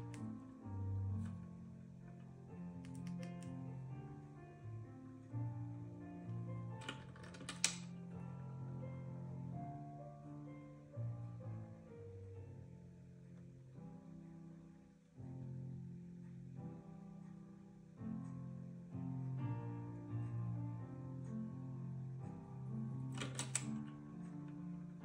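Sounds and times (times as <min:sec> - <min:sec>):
slow piano music: 0:00.0 - 0:25.0
keys jingling in a lock: 0:23.2 - 0:23.7.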